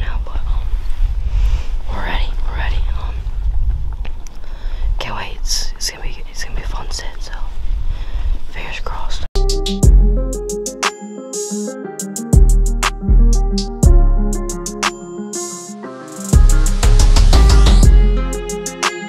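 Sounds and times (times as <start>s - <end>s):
person whispering: 1.9s - 3.2s, 5.0s - 7.5s, 8.5s - 9.3s
music: 9.4s - 19.0s.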